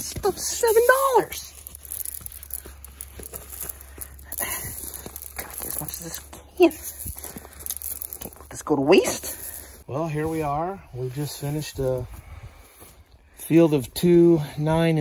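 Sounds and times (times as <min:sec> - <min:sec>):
voice: 0:00.0 - 0:01.5, 0:05.4 - 0:06.9, 0:08.5 - 0:12.0
corn kernels rustling and pouring: 0:00.0 - 0:12.1.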